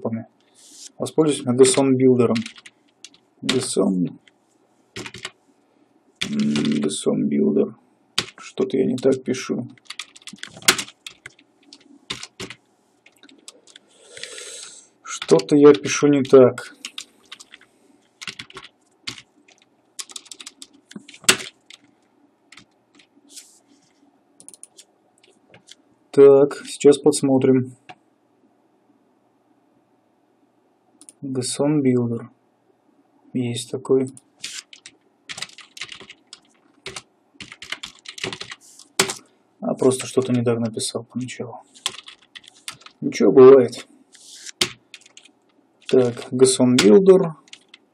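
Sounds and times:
soft breathy hiss: 0:00.4 - 0:01.2, 0:12.8 - 0:15.1
computer keyboard keystrokes: 0:02.4 - 0:04.4, 0:05.0 - 0:05.4, 0:06.2 - 0:06.8, 0:08.2 - 0:08.5, 0:09.7 - 0:13.8, 0:15.1 - 0:21.9, 0:24.4 - 0:25.8, 0:34.4 - 0:39.2, 0:41.8 - 0:43.0, 0:44.5 - 0:47.8.

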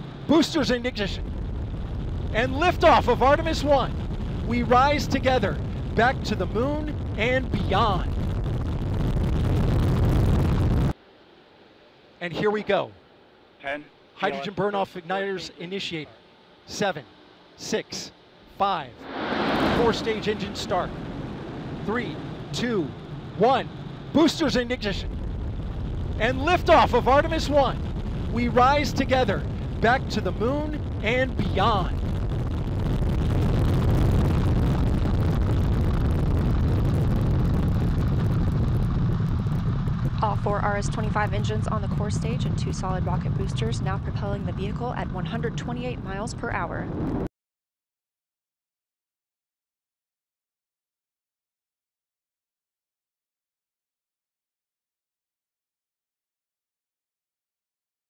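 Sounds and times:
rocket engines roaring: 0:00.0 - 0:11.0, 0:16.7 - 0:47.3.

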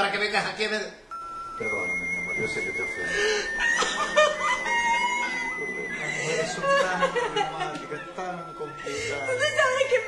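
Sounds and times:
woman laughing high-pitched: 0:03.3 - 0:08.1.

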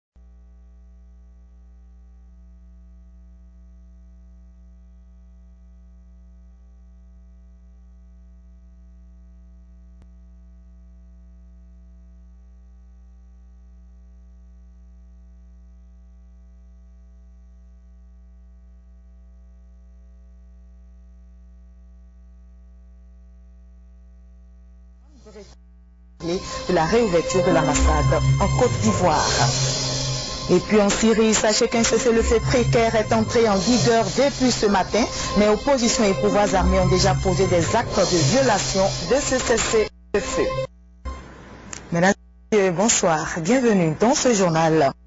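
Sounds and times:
electrical mains hum: 0:00.2 - 0:45.0.

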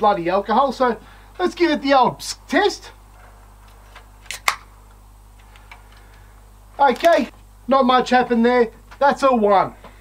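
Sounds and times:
beer can cracked open: 0:04.2 - 0:04.7.

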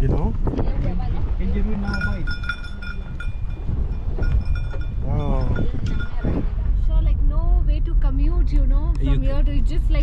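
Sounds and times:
livestock bell ringing: 0:01.8 - 0:06.4.

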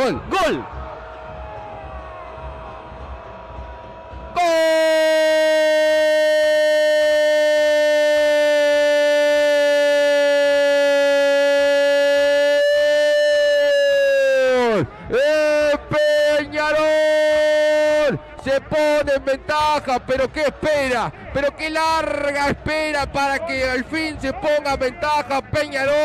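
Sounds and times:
commentator shouting goal call: 0:00.0 - 0:00.7, 0:04.3 - 0:26.0.

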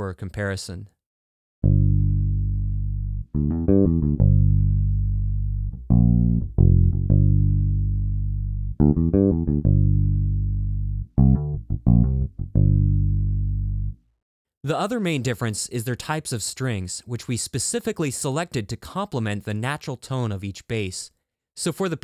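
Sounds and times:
electric bass finger-style playing: 0:01.6 - 0:14.0.

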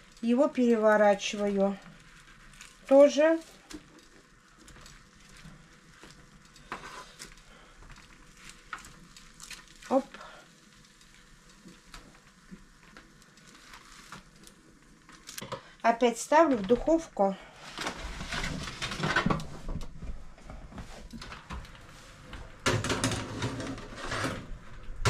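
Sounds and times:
peppers sizzling on baking tray: 0:00.0 - 0:19.1.

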